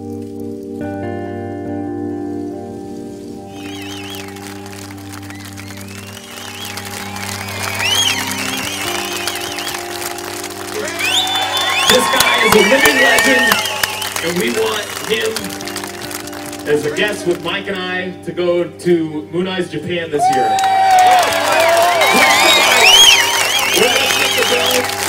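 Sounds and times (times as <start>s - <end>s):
slow background music: 0.0s - 25.0s
crowd cheering and clapping: 3.5s - 17.8s, 20.2s - 25.0s.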